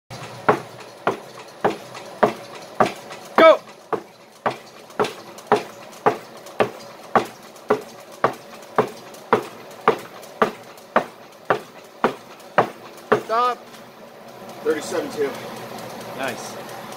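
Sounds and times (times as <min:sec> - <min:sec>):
rollers running: 0:00.1 - 0:16.9
gloved hands striking push rims: 0:00.2 - 0:13.6.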